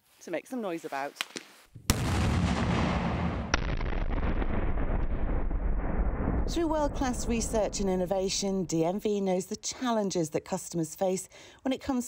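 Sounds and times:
sharp crack: 0:01.2 - 0:07.9
explosion bang: 0:01.8 - 0:08.7.

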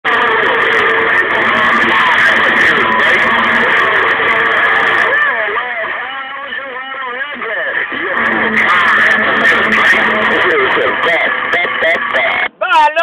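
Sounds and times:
radio static: 0:00.0 - 0:12.6
garbled radio voices: 0:00.0 - 0:13.0.

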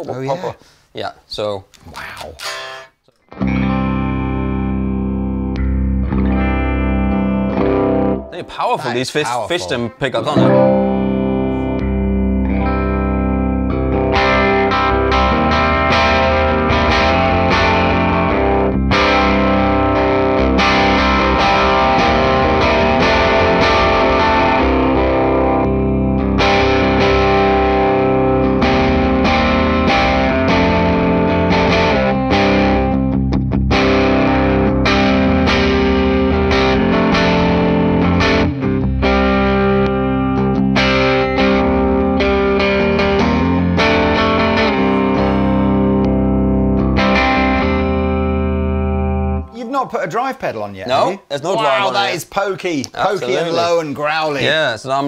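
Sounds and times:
distorted electric guitar riffing: 0:02.4 - 0:08.3, 0:10.4 - 0:49.5.

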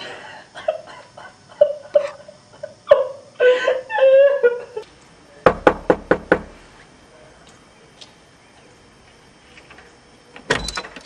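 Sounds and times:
woman sobbing and wailing: 0:00.6 - 0:04.8
knocks on wooden door: 0:05.4 - 0:06.6.

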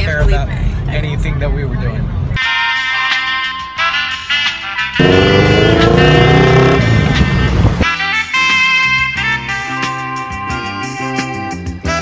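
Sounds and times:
swing music with saxophone: 0:02.4 - 0:12.0
motorcycle trike engine revving: 0:05.0 - 0:07.8
spinning tyre noise: 0:05.0 - 0:07.8.

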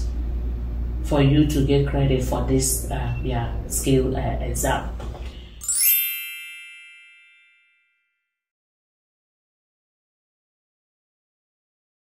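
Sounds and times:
bell-like chime: 0:05.6 - 0:08.4.

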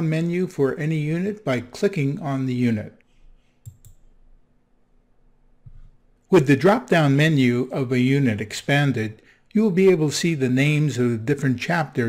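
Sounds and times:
faint room hum: 0:00.0 - 0:12.0
computer mouse clicks: 0:03.6 - 0:04.1.

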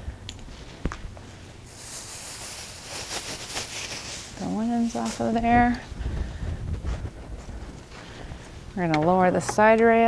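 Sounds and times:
bed linen rustling: 0:00.5 - 0:09.3.

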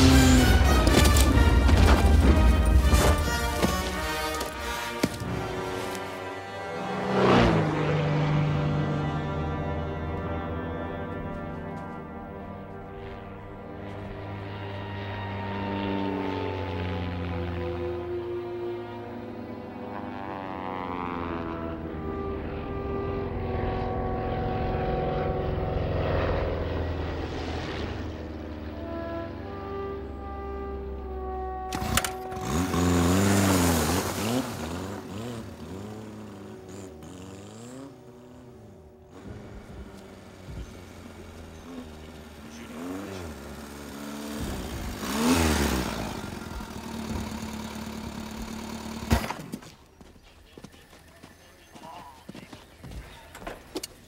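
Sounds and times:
film soundtrack music: 0:00.0 - 0:15.1, 0:28.0 - 0:33.6
vehicle engine noise: 0:00.0 - 0:54.0.

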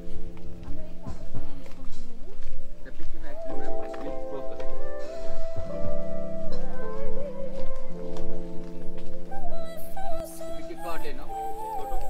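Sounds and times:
song with singing voice and beat: 0:00.0 - 0:12.0.

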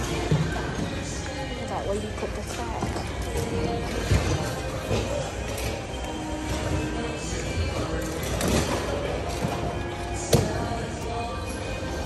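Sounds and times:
background music: 0:00.0 - 0:12.0
store hubbub: 0:00.0 - 0:12.0.

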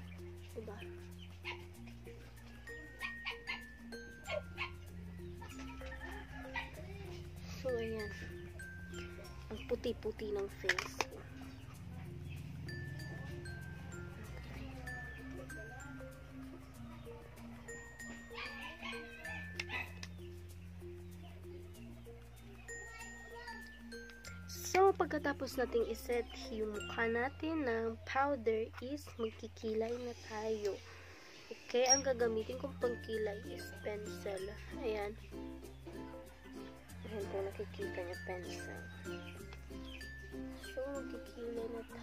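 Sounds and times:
soft background music: 0:00.0 - 0:42.0
dog barking: 0:01.4 - 0:01.7, 0:04.3 - 0:04.8
dog yipping and whimpering: 0:01.4 - 0:01.8, 0:03.0 - 0:04.8, 0:18.1 - 0:20.0.

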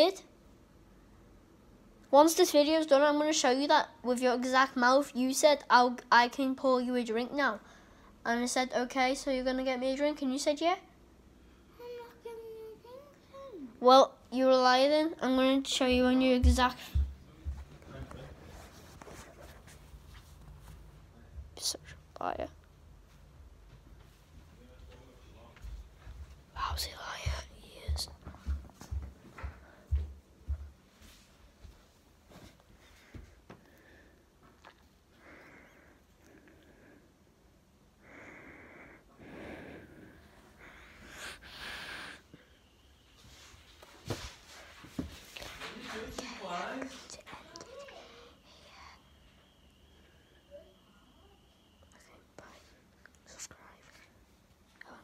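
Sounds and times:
child whispering: 0:11.7 - 0:13.8, 0:26.5 - 0:28.3, 0:46.2 - 0:49.1, 0:50.4 - 0:54.2, 0:54.8 - 0:55.0.

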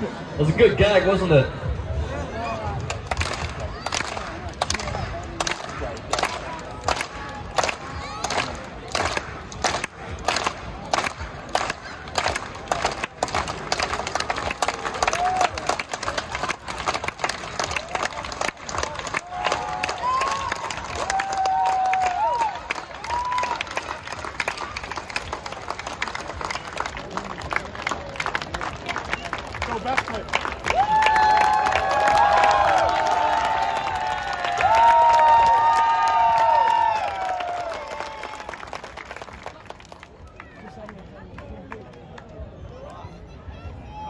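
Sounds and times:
crowd clapping and cheering: 0:01.7 - 0:43.2
shouts from crowd: 0:30.7 - 0:38.6.

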